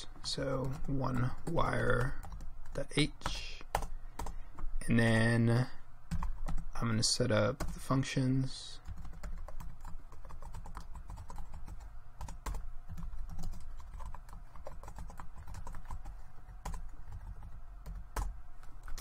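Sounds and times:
computer keyboard typing: 0.2 - 4.7, 6.1 - 6.7, 8.8 - 19.0.

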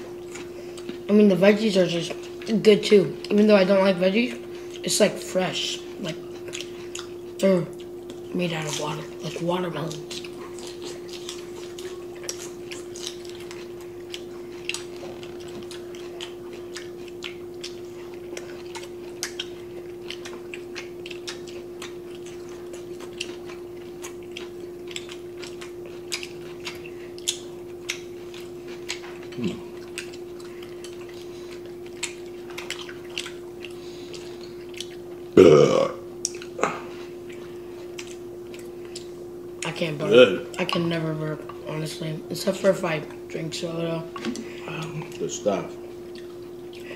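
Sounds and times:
steady hum: 0.0 - 46.9
loud burp: 35.4 - 36.0.

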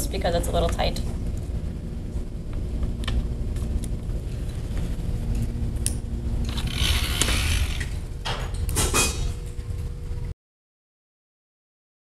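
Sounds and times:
motor humming: 3.6 - 10.3
paper hissing scrape through wheels: 6.5 - 8.0.

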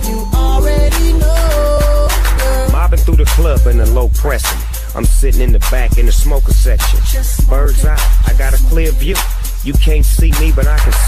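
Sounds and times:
rapping over a heavy bass beat: 0.0 - 11.0.

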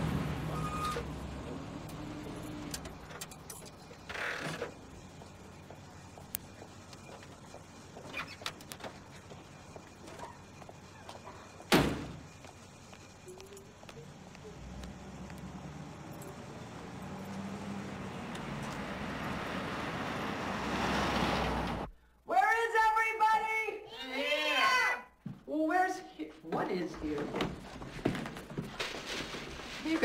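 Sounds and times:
car passing: 0.0 - 3.1, 14.0 - 21.9.

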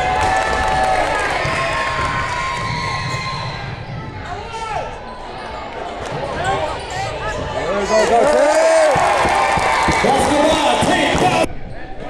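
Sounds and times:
murmur of spectators: 0.0 - 12.0.

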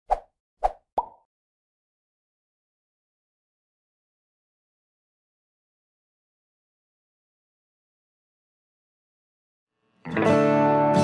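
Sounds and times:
popping sound effects: 0.7 - 1.2.

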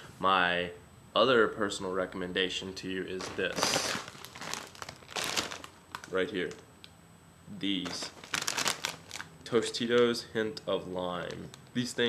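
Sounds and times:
plastic chip bag crinkling: 3.1 - 6.6, 7.7 - 10.2, 10.9 - 12.0.

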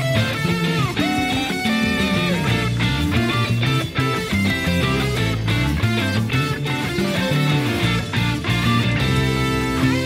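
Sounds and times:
bass guitar line: 0.0 - 10.0
electric guitar lead line: 0.0 - 10.0
rhythm guitar: 0.0 - 10.0.

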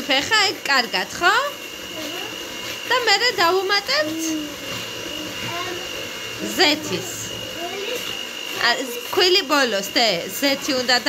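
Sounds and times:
small electric motor whining: 0.0 - 11.0.

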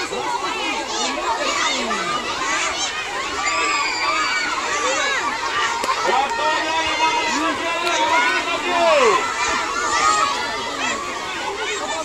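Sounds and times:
children shouting and shrieking: 0.0 - 12.0.

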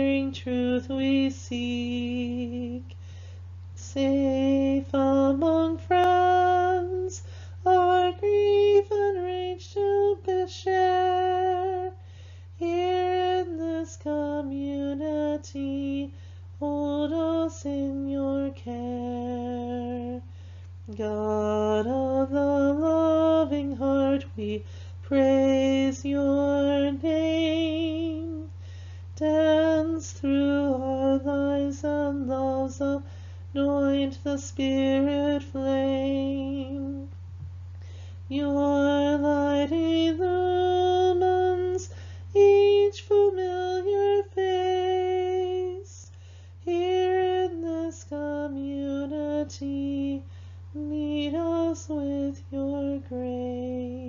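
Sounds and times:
woman singing a hymn solo: 0.0 - 3.0, 3.8 - 12.0, 12.6 - 20.3, 20.9 - 28.6, 29.2 - 37.1, 38.3 - 54.0
low steady hum: 0.0 - 54.0
woman breathing: 2.9 - 3.6, 7.2 - 7.6, 12.0 - 12.6, 16.1 - 16.6, 20.2 - 20.8, 24.6 - 25.0, 28.5 - 29.2, 33.0 - 33.5, 37.7 - 38.3, 41.8 - 42.3, 46.0 - 46.6, 50.2 - 50.7.

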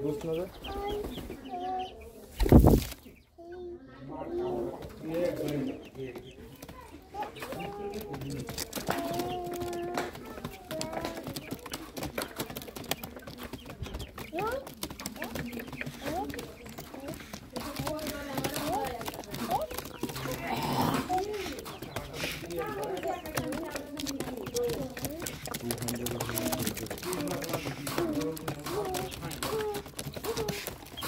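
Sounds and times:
pigeons cooing: 7.6 - 31.0.

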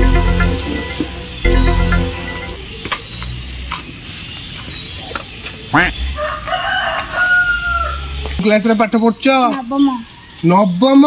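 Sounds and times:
rooster crowing: 6.1 - 8.3.

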